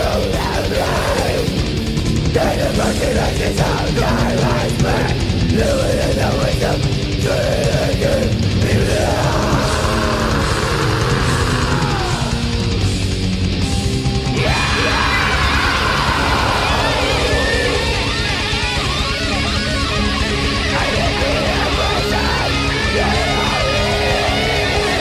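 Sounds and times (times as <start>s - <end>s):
bass guitar: 0.0s - 25.0s
bending lead guitar lines: 0.0s - 25.0s
distorted electric guitars: 0.0s - 25.0s
drums: 0.0s - 25.0s.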